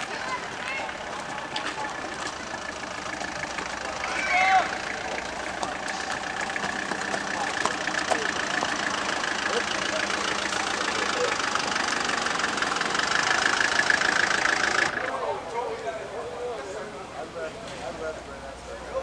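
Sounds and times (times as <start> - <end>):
people talking: 0.0 - 2.3, 3.9 - 5.2, 7.1 - 11.5, 14.9 - 19.0
scooter engine running: 0.0 - 15.4.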